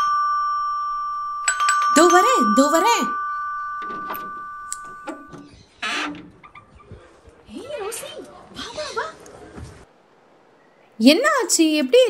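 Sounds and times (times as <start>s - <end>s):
electronic doorbell chime: 0.0s - 5.4s
front door opening: 0.0s - 7.1s.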